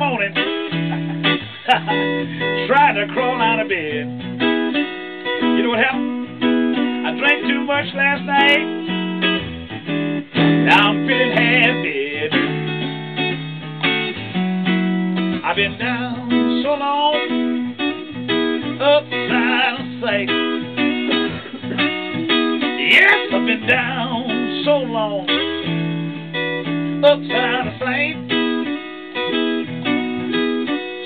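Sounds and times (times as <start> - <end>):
electric guitar blues: 0.0 - 31.0.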